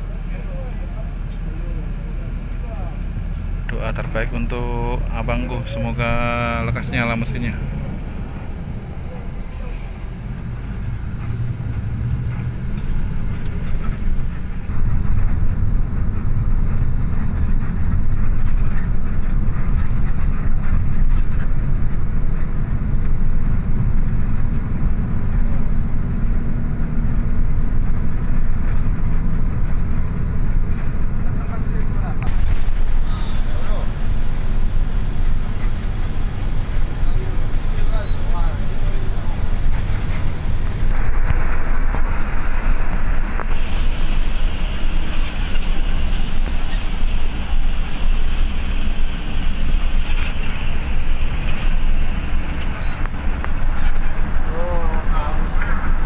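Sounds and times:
bus engine and road rumble: 0.0 - 56.0.

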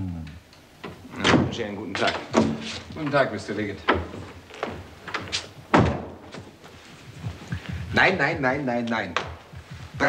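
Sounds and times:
door closing thud: 0.8 - 2.9, 3.8 - 6.4.

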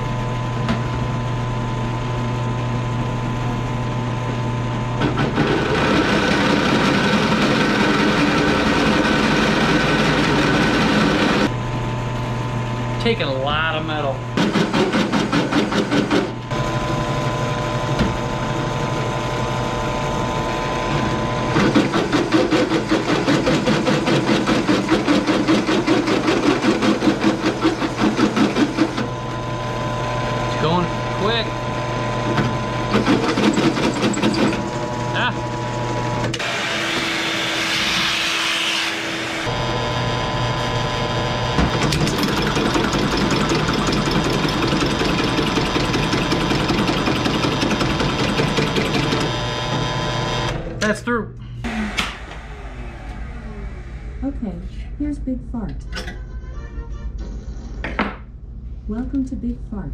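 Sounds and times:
drill press motor running: 0.0 - 50.7, 51.6 - 55.0
shop vacuum running: 0.0 - 59.2.

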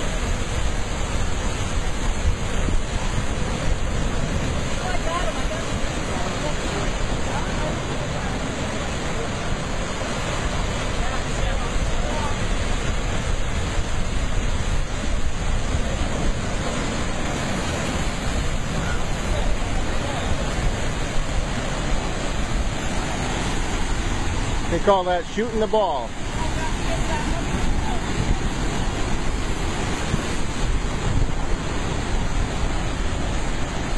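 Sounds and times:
wind rumble on microphone: 0.0 - 25.0, 26.1 - 33.9
ocean surf breaking on rocks: 0.0 - 33.9.

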